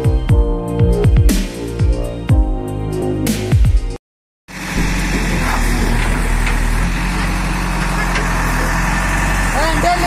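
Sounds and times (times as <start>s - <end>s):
diesel engine running: 4.5s - 10.0s.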